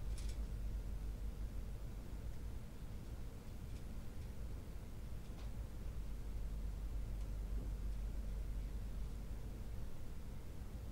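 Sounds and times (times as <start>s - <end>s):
steady low rumble: 0.0s - 10.9s.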